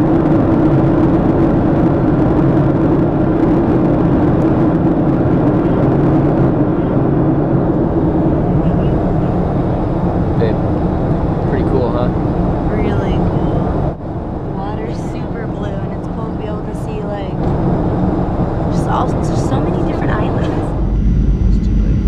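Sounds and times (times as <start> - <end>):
jet airliner cabin noise: 0.0 - 22.0
low engine hum: 0.0 - 22.0
faint voices: 5.5 - 10.6, 11.4 - 13.7, 14.5 - 17.4, 18.7 - 20.8, 21.5 - 22.0.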